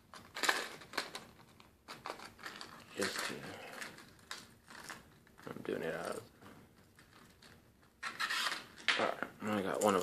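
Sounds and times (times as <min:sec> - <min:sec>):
plastic blister pack crinkling: 0:00.0 - 0:10.0.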